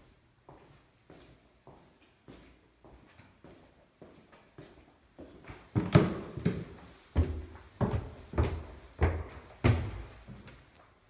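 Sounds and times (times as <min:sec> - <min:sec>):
heavy footsteps climbing stairs: 0:05.2 - 0:10.8.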